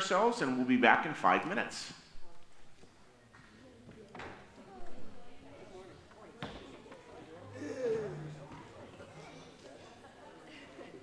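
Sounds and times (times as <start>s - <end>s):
indistinct chatter of crowd: 2.0s - 11.0s.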